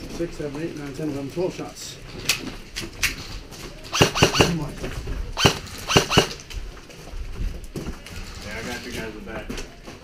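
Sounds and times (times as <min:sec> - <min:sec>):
airsoft gunfire snaps: 0:03.9 - 0:04.6, 0:05.4 - 0:06.4.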